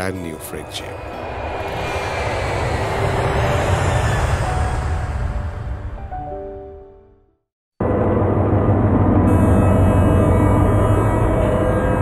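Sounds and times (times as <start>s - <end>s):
jet airliner passing overhead: 0.0s - 6.2s.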